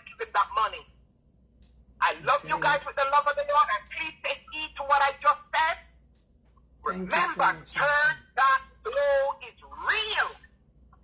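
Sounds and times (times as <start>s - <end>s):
person speaking: 2.0s - 4.8s, 6.8s - 10.4s.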